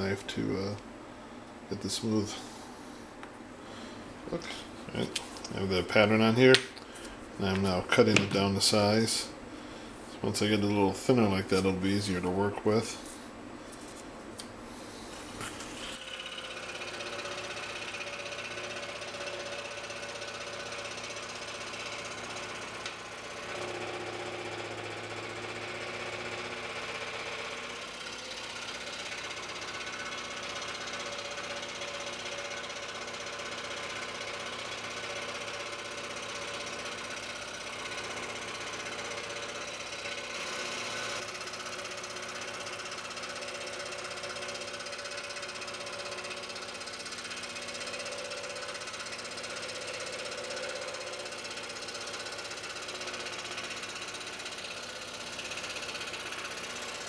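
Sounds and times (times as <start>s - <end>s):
scroll saw cutting wood: 15.6s - 57.0s.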